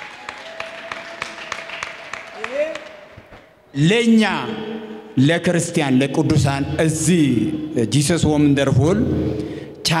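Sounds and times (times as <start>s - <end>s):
scattered audience clapping: 0.0s - 3.6s.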